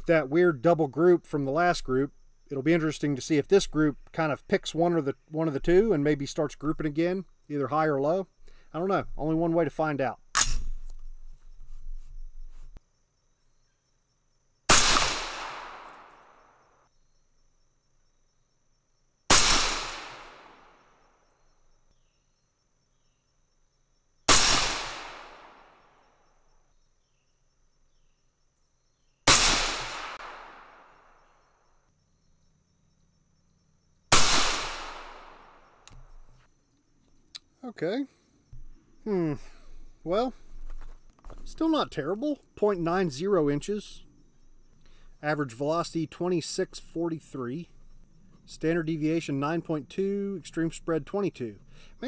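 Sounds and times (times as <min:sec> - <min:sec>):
rifle shots: 0:14.7 - 0:16.1, 0:19.3 - 0:20.7, 0:24.3 - 0:25.8, 0:29.3 - 0:30.9, 0:34.1 - 0:35.6
gunshot echo: 0:14.7 - 0:16.2, 0:19.3 - 0:20.8, 0:24.3 - 0:25.8, 0:29.3 - 0:31.0, 0:34.1 - 0:35.6.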